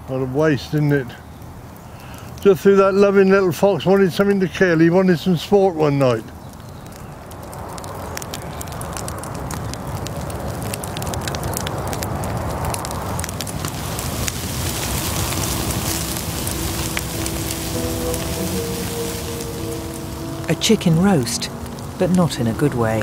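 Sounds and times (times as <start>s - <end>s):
bonfire crackling and popping: 0.0s - 23.0s
rush of flames: 6.4s - 22.3s
faint music tones: 14.2s - 23.0s.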